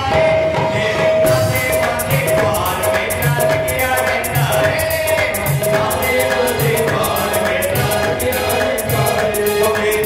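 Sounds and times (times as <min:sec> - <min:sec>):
fast bright percussion: 0:00.0 - 0:10.0
group singing devotional song: 0:00.0 - 0:10.0
low drum beat: 0:01.2 - 0:10.0.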